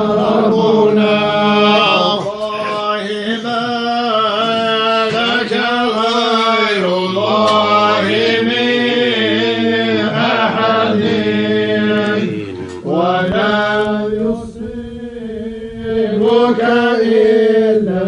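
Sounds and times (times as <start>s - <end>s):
men chanting: 0.0s - 18.0s.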